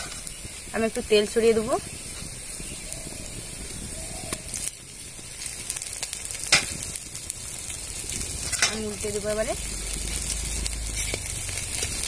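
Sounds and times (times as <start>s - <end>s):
fritters sizzling in oil: 0.0s - 12.0s
spitting oil pops: 3.6s - 9.0s.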